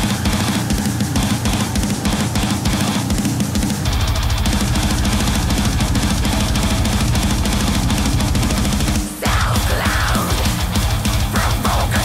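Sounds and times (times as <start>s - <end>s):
heavy metal song: 0.0s - 12.0s.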